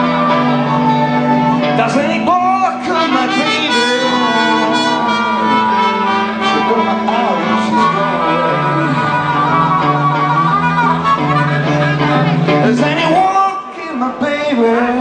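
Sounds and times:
lead wind instrument: 0:00.0 - 0:13.7
bass line: 0:00.0 - 0:15.0.

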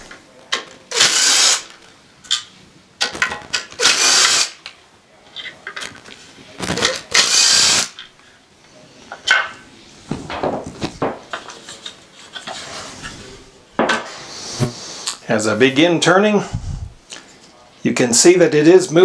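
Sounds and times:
cordless drill running: 0:00.9 - 0:01.7, 0:03.8 - 0:04.6, 0:07.1 - 0:08.0.

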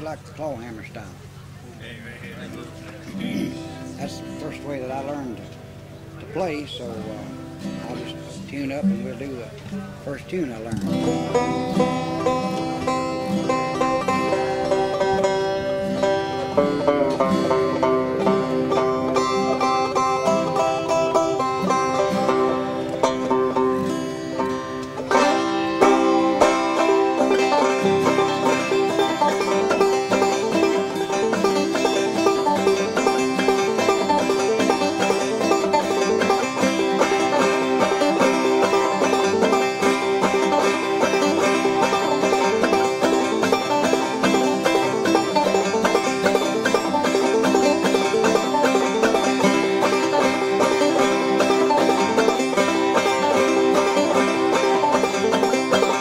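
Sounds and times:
banjo picking: 0:00.0 - 0:56.0.

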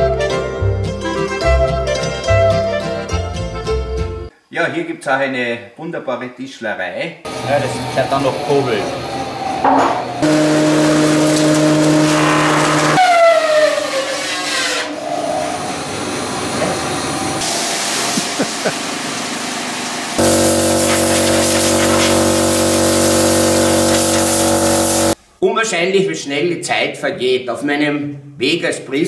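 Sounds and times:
loud machine hum: 0:07.3 - 0:13.0, 0:15.5 - 0:25.2
woodworking machinery humming: 0:07.3 - 0:13.0, 0:15.6 - 0:25.2
machine winding down whine: 0:07.3 - 0:14.1, 0:20.2 - 0:25.2.

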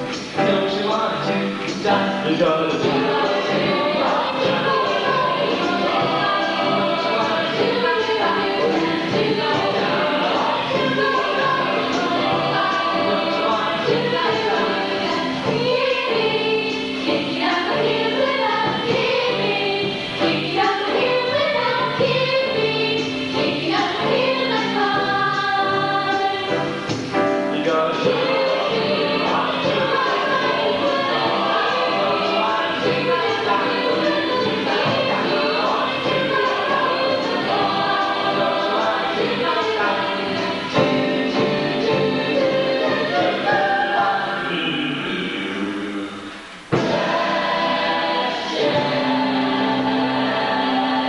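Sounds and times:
choir singing jazz: 0:00.0 - 0:51.0.

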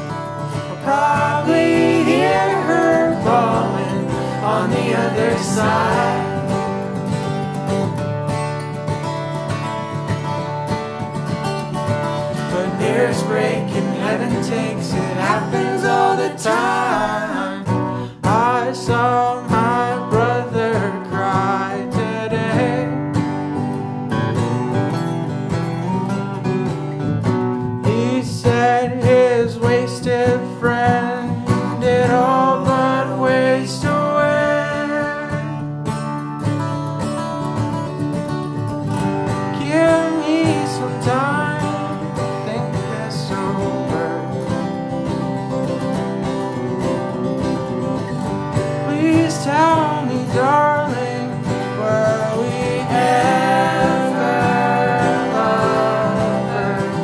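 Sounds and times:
picked acoustic guitar melody: 0:00.0 - 0:57.0
strummed guitar chords: 0:00.0 - 0:57.0.

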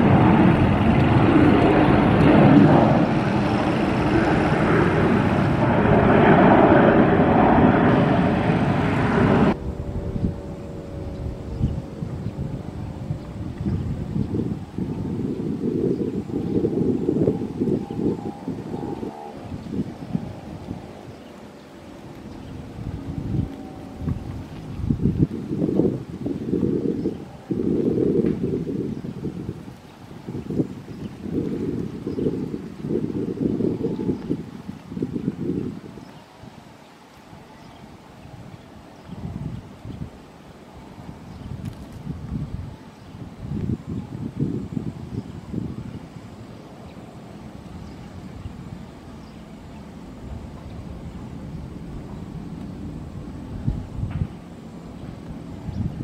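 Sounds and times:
distant jet engines humming: 0:00.0 - 0:56.0
wind buffeting microphone: 0:00.0 - 0:56.0.

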